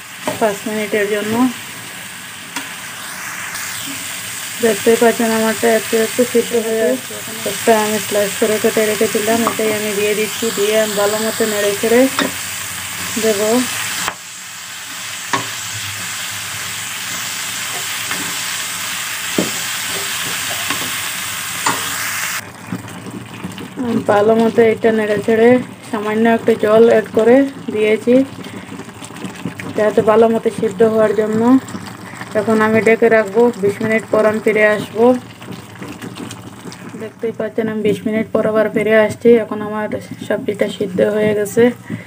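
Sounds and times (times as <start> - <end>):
vegetables sizzling in oil: 0.0 - 42.0.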